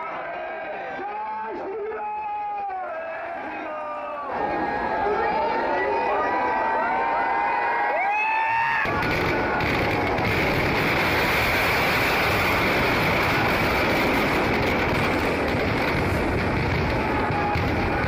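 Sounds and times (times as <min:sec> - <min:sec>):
fireworks crackling: 0:08.8 - 0:18.0.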